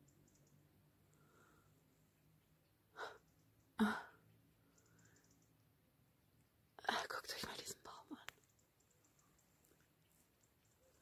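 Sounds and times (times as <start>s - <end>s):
low background hiss: 0.0s - 11.0s
woman whispering: 6.8s - 8.4s.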